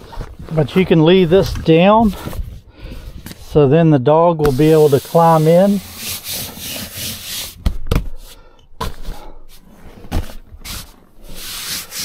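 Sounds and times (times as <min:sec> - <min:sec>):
hands rubbing padded fabric: 0:04.5 - 0:07.6, 0:10.6 - 0:12.0
dull thumps on padding: 0:07.6 - 0:08.2.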